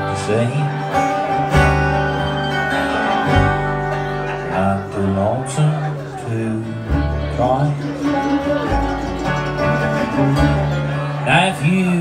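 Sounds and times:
bluegrass band playing: 0.0s - 12.0s.

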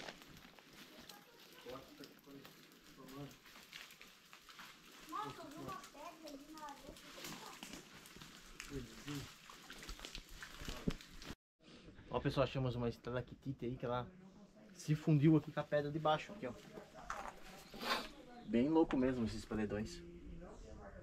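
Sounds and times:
footsteps crunching dry leaves: 0.0s - 11.3s.

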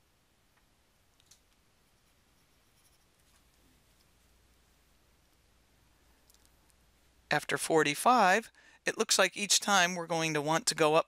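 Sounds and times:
stylus scratching on tablet: 1.8s - 3.6s.

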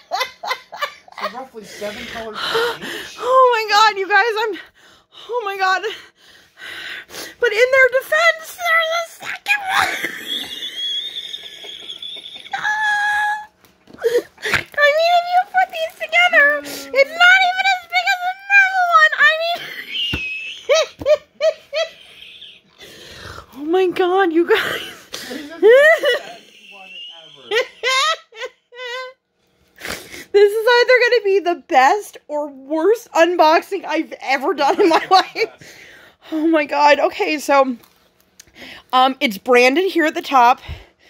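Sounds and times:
woman laughing and squealing: 8.6s - 22.7s, 24.4s - 29.2s, 34.6s - 35.6s
woman's wheezing laugh: 9.8s - 13.3s, 24.5s - 29.2s.

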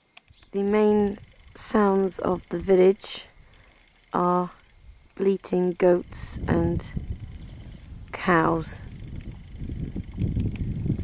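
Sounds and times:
wind buffeting microphone: 5.8s - 11.0s.

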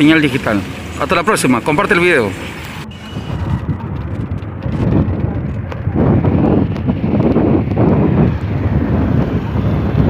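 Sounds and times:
vehicle running with road noise: 0.0s - 10.0s
wind rumble on microphone: 2.8s - 10.0s.

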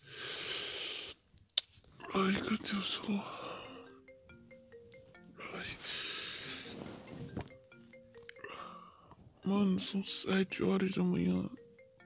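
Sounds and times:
marimba phone ringtone: 2.2s - 12.0s.

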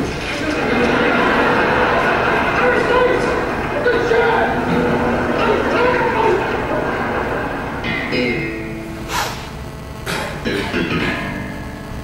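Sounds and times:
voice over speakers: 2.3s - 8.6s.

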